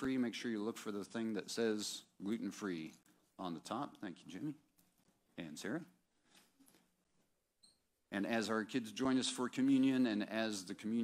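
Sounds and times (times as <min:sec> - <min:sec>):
faint high-pitched squeak: 0:07.6 - 0:07.9.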